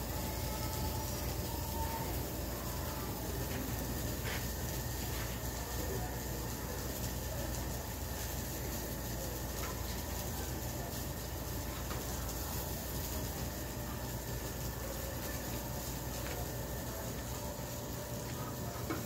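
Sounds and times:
faint steady high tones: 0.0 - 19.0.

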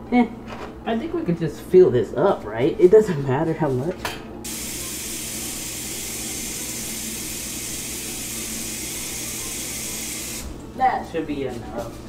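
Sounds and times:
faucet running into a pot: 4.4 - 10.5.

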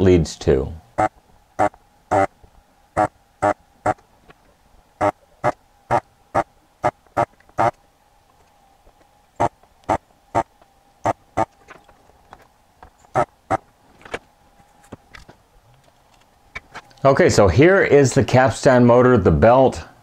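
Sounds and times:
faint steady hum: 0.0 - 20.0
desoldering pump buzzing: 0.8 - 13.8.

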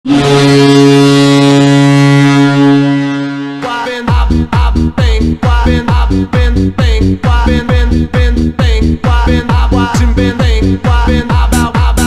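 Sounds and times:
ice hockey goal horn blast: 0.0 - 4.8.

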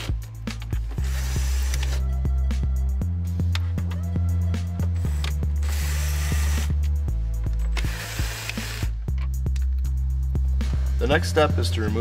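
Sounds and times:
background music with steady beat: 0.0 - 12.0
cordless drill running: 1.0 - 2.0, 5.6 - 6.8, 7.8 - 8.9.

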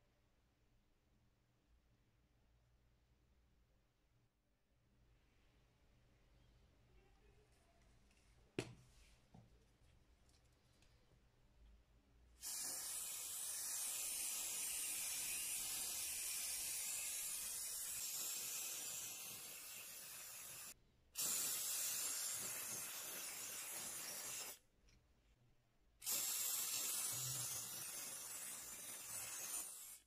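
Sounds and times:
aerosol spray can hissing: 12.4 - 24.6, 26.0 - 30.0.

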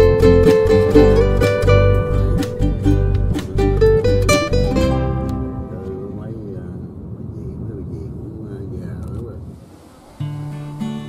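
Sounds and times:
car driving rumble: 0.0 - 11.0
people talking: 5.4 - 9.5.

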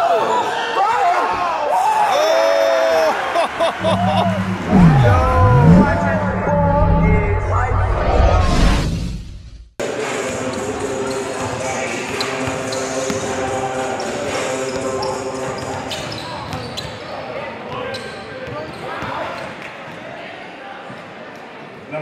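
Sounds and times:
voices echoing in gym: 9.8 - 22.0.

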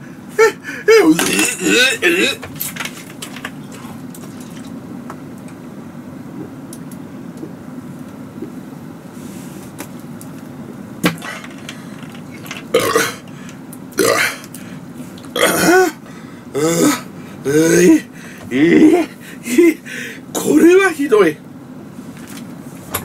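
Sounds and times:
low steady hum: 0.0 - 23.0
man's harsh throat noises: 0.4 - 2.4, 12.7 - 13.3, 14.0 - 14.5, 15.3 - 19.1.

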